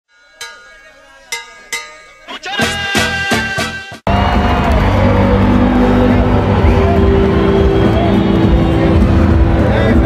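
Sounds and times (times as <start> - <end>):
sharp metallic strikes ringing: 0.1 - 3.1.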